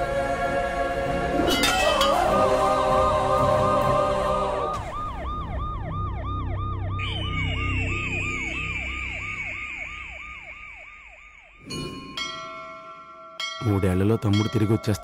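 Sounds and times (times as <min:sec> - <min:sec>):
low music: 0:00.0 - 0:06.9
bell ringing: 0:01.5 - 0:02.5, 0:11.6 - 0:15.0
siren wailing: 0:01.6 - 0:12.3.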